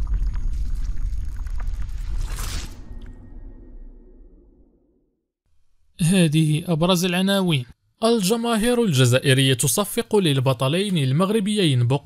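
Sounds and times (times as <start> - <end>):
scattered crackles: 0.0 - 3.2.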